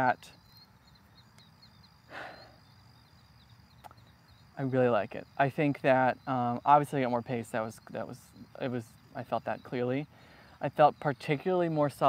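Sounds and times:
crickets chirping: 0:00.0 - 0:12.0
breath-like rush: 0:02.1 - 0:02.6.

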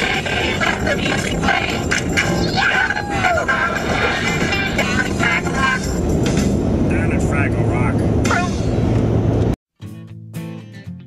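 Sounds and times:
tv show voices: 0:00.0 - 0:06.0
road and engine rumble in car: 0:00.0 - 0:09.6.

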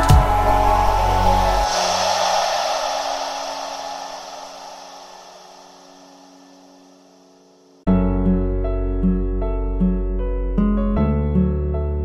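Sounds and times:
electronic music: 0:00.0 - 0:07.5
hissy wash: 0:00.0 - 0:07.8
low held note: 0:00.0 - 0:08.0.

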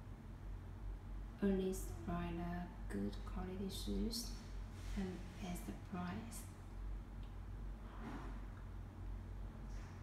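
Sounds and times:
steady low hum: 0:00.0 - 0:10.0
faint soft rustle: 0:04.3 - 0:05.8.

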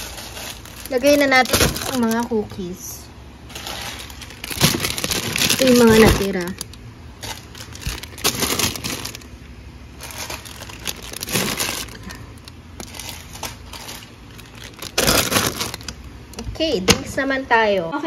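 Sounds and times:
plastic snack packets crinkling: 0:00.0 - 0:16.4.

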